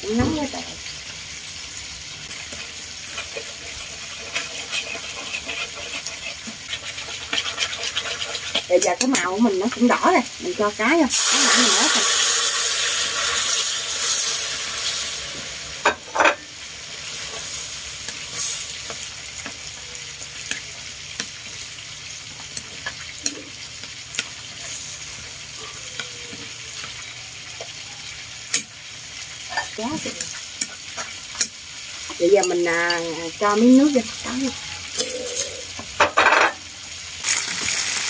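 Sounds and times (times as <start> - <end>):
fish frying in oil: 0.0 - 38.0.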